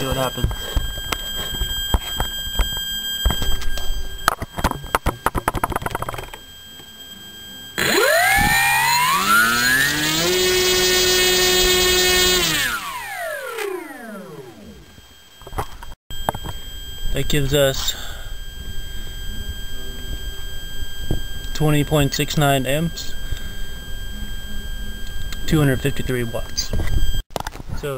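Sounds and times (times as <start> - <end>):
electric motor propeller whine: 0.0 - 27.2.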